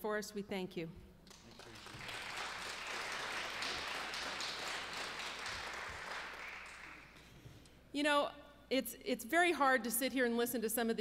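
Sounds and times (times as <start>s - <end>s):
audience applauding: 1.3s - 7.2s.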